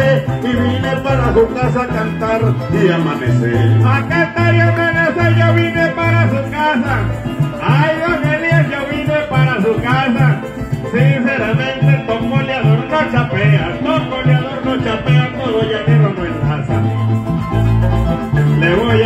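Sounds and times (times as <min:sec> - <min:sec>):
fast plucked strings: 0:00.0 - 0:19.0
pulsing bass line: 0:00.0 - 0:19.0.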